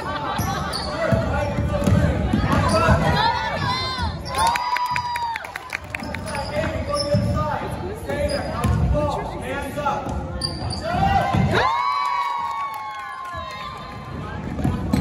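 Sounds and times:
sneakers squeaking on gym floor: 0.3s - 3.3s, 6.0s - 11.5s.

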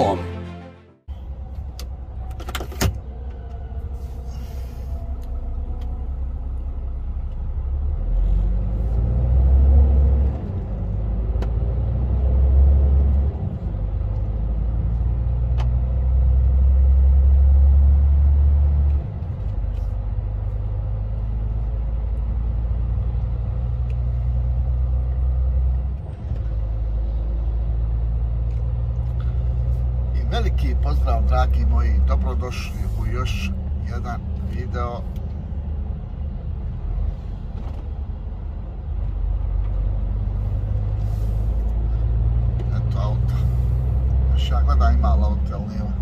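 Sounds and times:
truck engine drone from cab: 0.0s - 46.0s.

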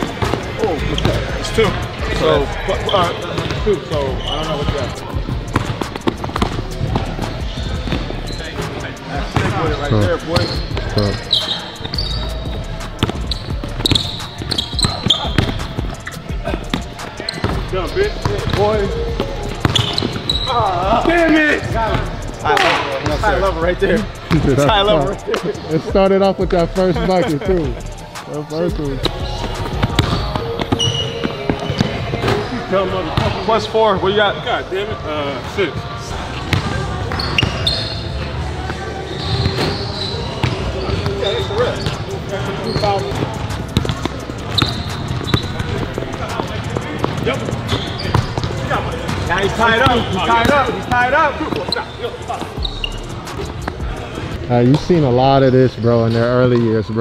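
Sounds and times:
background music: 0.0s - 57.0s
short high squeak: 52.6s - 53.0s.

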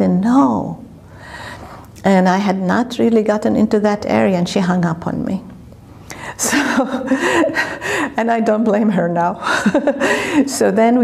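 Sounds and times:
woman speaking: 0.0s - 0.8s, 2.0s - 5.6s, 8.1s - 11.0s
sharp intake of breath: 1.0s - 1.9s.

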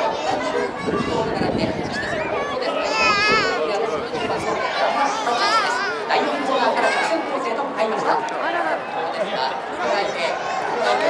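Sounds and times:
crowd chattering and calling out: 0.0s - 11.0s.

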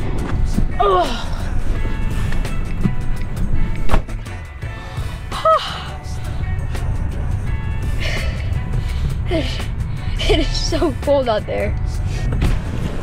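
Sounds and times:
faint background music: 0.0s - 13.0s
vehicle cabin rumble: 0.0s - 13.0s.

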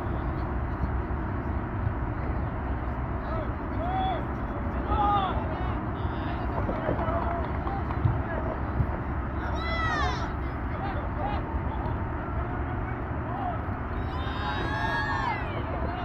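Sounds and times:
steady low rumble: 0.0s - 16.0s
people shouting: 9.4s - 16.0s.

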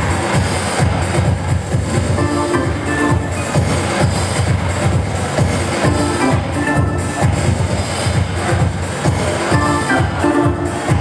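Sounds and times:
funk tune on electric keyboard: 2.0s - 8.0s, 9.5s - 11.0s.

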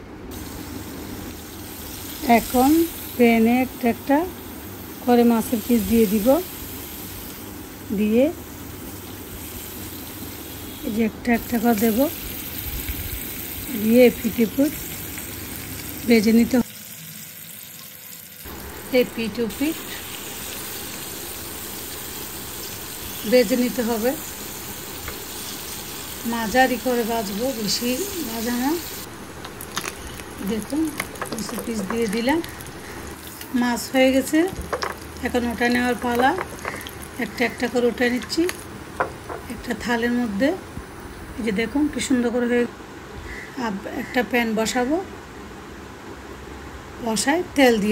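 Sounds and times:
hot oil sizzling in a frying pan: 0.3s - 39.8s.

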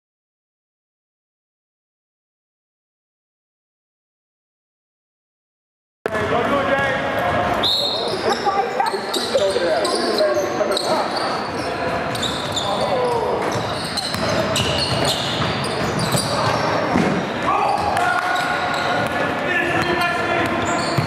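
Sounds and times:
players shouting: 10.8s - 21.0s
basketball bouncing on wooden floor: 13.5s - 17.1s.

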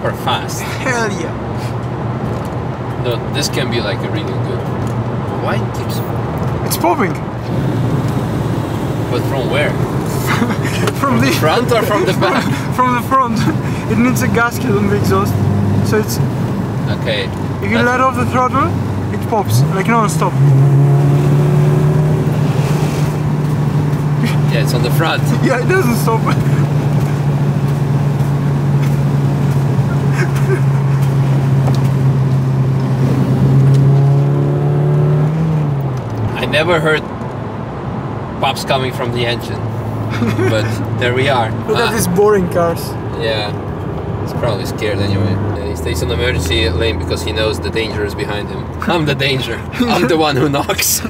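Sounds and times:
car engine and road drone: 0.0s - 51.0s.

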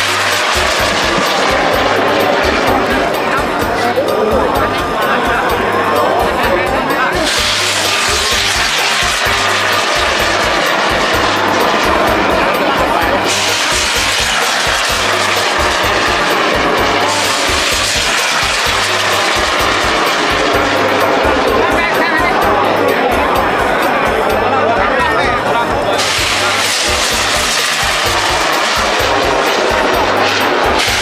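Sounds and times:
rockets launching with rushing hiss: 0.0s - 3.1s, 7.2s - 21.5s, 26.0s - 31.0s
music with low beat: 0.0s - 31.0s.

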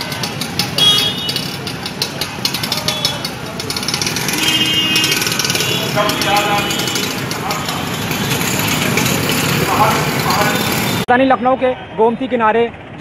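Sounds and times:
motorcycle engines running: 0.0s - 11.1s
crowd voices: 0.0s - 12.2s.

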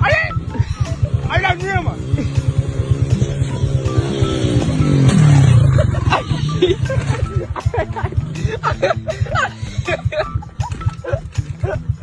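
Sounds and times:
small motorcycle engine running: 0.2s - 12.0s.

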